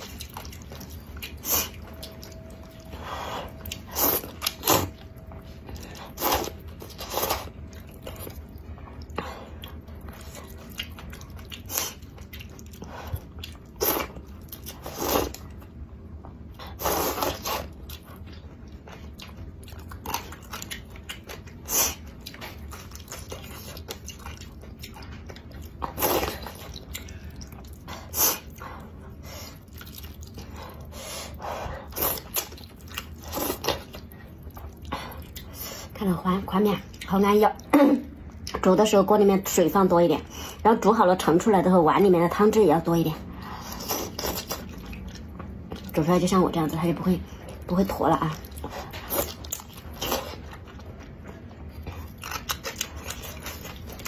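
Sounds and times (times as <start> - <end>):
person chewing: 0.0 - 35.9, 43.4 - 45.9, 48.3 - 54.0.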